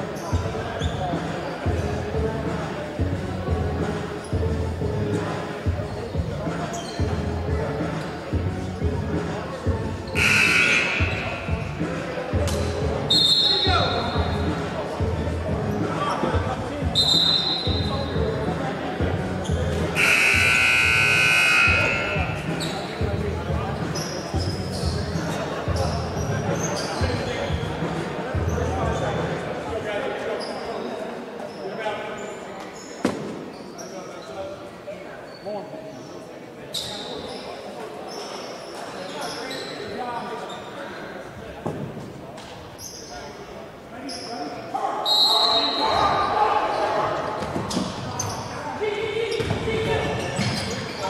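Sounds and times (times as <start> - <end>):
scoreboard buzzer: 10.2 - 11.2, 20.0 - 22.1.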